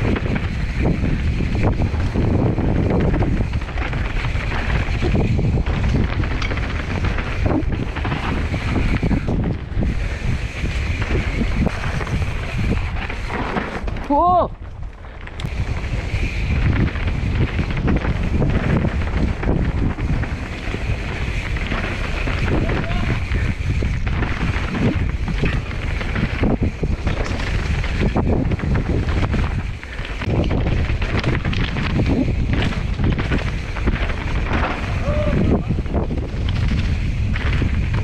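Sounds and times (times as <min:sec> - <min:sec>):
bike knocking and rattling: 0:00.0 - 0:38.0
bike tyres rolling on gravel: 0:00.0 - 0:38.0
wind on microphone: 0:00.0 - 0:38.0.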